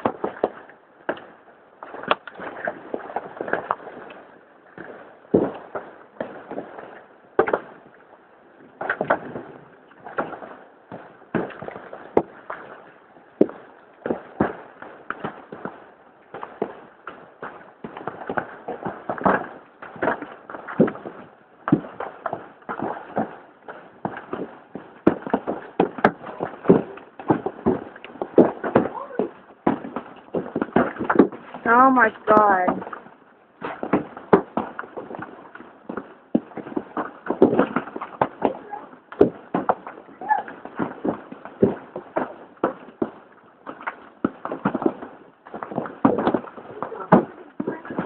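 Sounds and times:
hailstones striking hard surfaces: 24.0s - 33.0s, 35.8s - 48.0s.

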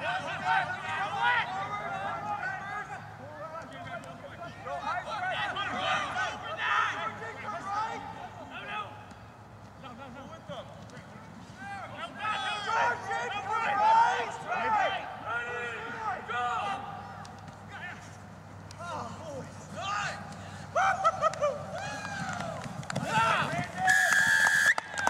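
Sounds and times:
distant people shouting: 0.0s - 25.0s.

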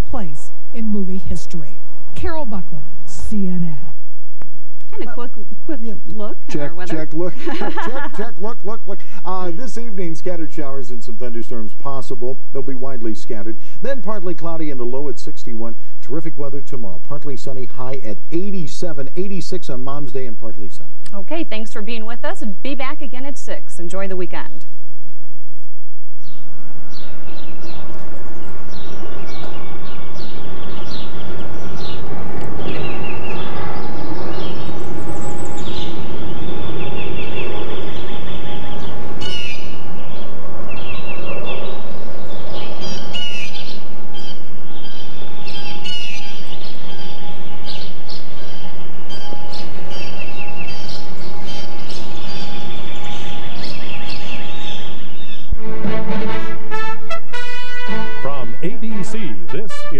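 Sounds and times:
low background rumble: 0.0s - 57.4s
birds chirping and singing: 6.5s - 12.0s, 26.2s - 59.9s.

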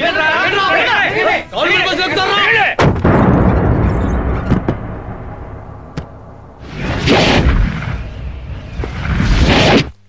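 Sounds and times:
men shouting: 0.0s - 2.8s
loud boom with low rumble: 2.8s - 9.4s.

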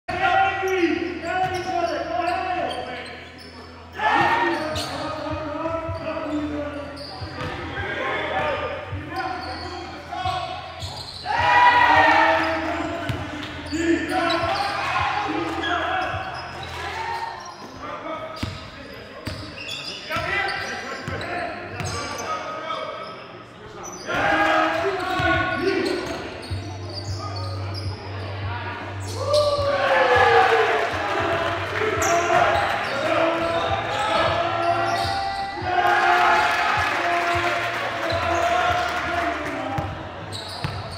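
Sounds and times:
voices echoing in hall: 0.1s - 40.9s.

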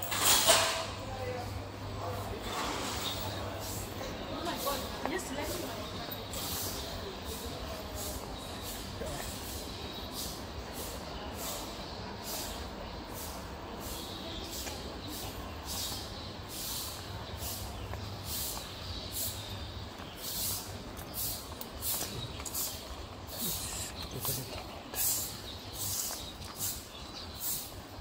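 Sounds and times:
footsteps on brick pavement: 2.1s - 28.0s.

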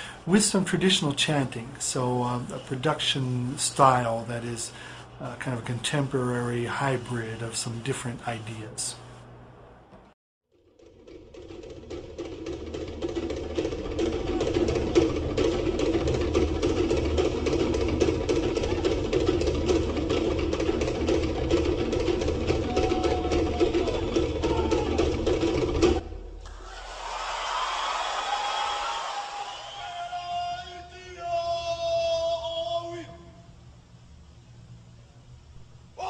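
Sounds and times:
drum ensemble playing fast rhythm: 12.6s - 26.0s.

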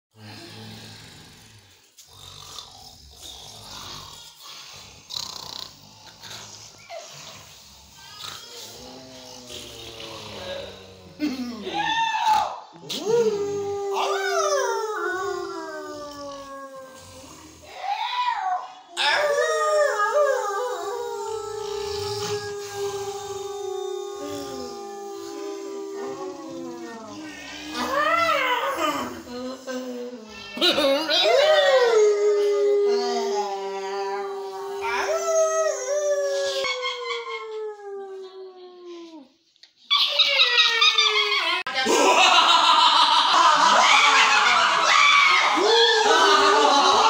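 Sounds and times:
dog howling: 11.7s - 29.1s, 31.1s - 38.9s, 43.6s - 47.0s.

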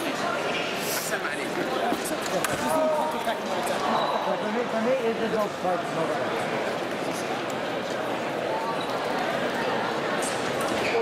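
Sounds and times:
crowd chatter indoors: 0.0s - 11.0s.

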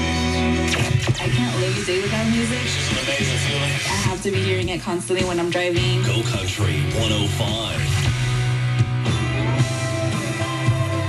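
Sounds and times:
country radio music: 0.0s - 11.0s.

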